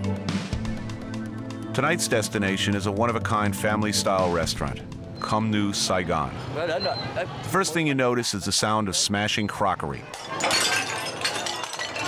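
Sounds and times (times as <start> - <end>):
clay pots smashing: 10.0 - 12.0
clinks of shards: 10.1 - 12.0.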